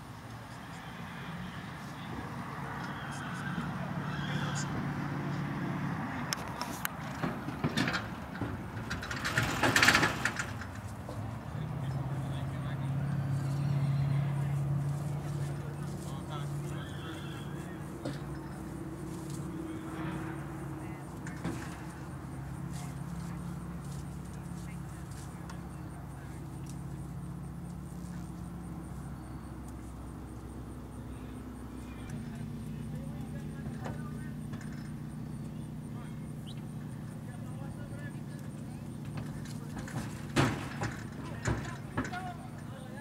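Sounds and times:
background voices: 0:00.0 - 0:43.0
low engine rumble: 0:00.0 - 0:43.0
horse whinnying: 0:02.6 - 0:04.7.

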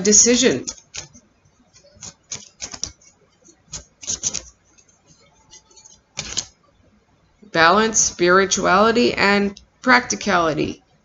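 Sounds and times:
cards being shuffled: 0:00.6 - 0:06.5.

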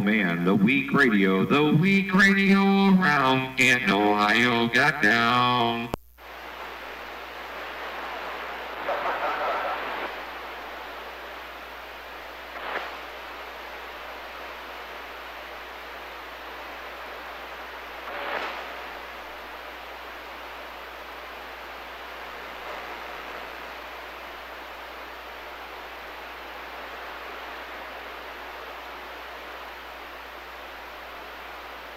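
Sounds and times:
radio signal crackle: 0:00.0 - 0:31.9
radio static hiss: 0:00.0 - 0:31.9.

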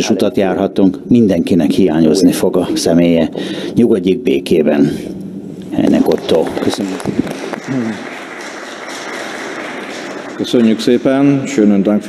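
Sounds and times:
room ambience hiss: 0:00.0 - 0:12.0.

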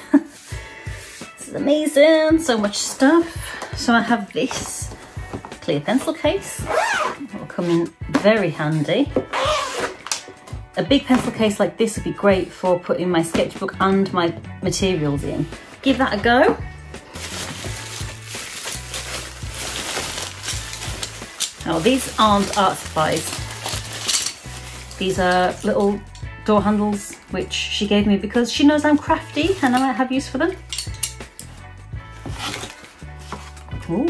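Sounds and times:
background music with bass line: 0:13.4 - 0:34.0
bubble wrap crackling: 0:17.0 - 0:26.2, 0:29.0 - 0:29.9
items shifted in cardboard box: 0:17.1 - 0:25.6, 0:32.1 - 0:33.8.

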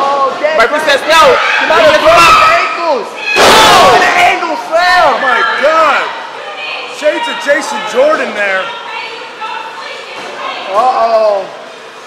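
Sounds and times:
crowd shouting: 0:00.8 - 0:10.8.

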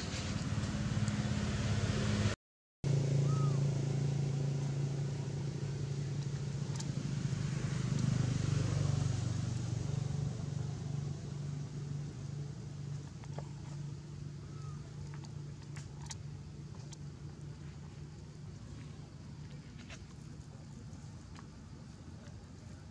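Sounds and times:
engine idling hum: 0:00.0 - 0:22.9.

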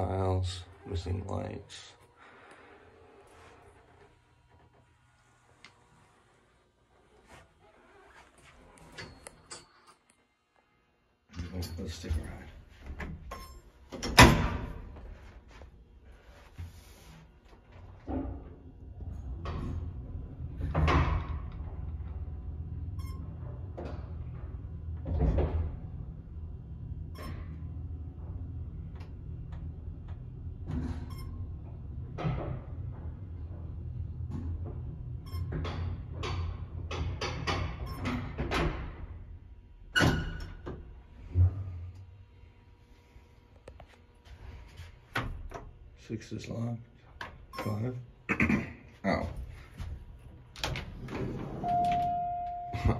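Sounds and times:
elevator low hum: 0:00.0 - 0:09.8, 0:11.4 - 0:46.5, 0:49.1 - 0:52.9
elevator clack: 0:50.6 - 0:52.9.

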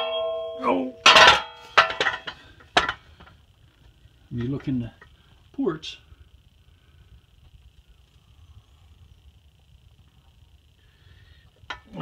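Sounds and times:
metal exhaust pipe clanking: 0:00.0 - 0:03.4, 0:11.7 - 0:12.0.

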